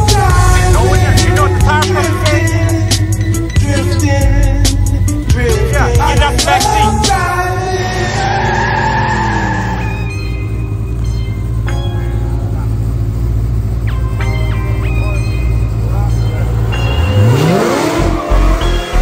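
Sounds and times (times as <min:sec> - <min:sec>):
car engine idling and revving: 0:00.0 - 0:19.0.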